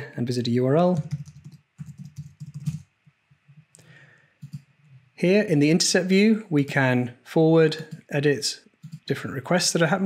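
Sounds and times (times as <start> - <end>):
typing on keyboard: 1.0 - 2.9, 4.4 - 4.7, 8.8 - 9.1.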